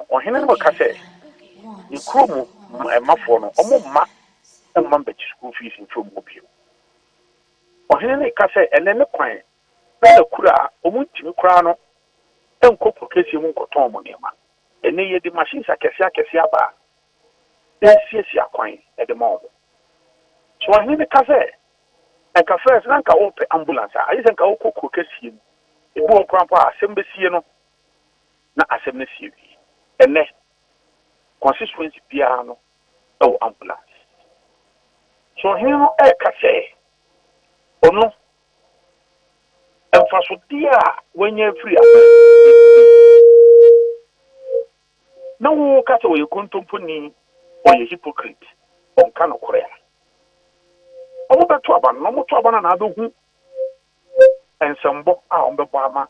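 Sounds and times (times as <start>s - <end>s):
man talking over telephone: 0.0s - 6.4s, 7.9s - 9.4s, 10.0s - 11.8s, 12.6s - 16.8s, 17.8s - 19.5s, 20.6s - 21.5s, 22.4s - 25.4s, 26.0s - 27.4s, 31.4s - 32.6s, 33.2s - 34.0s, 35.4s - 36.8s, 37.8s - 38.2s, 39.9s - 42.0s, 45.4s - 47.1s, 47.7s - 49.8s, 51.3s - 53.1s, 54.6s - 56.0s
steady electronic telephone tone: 41.4s - 46.0s.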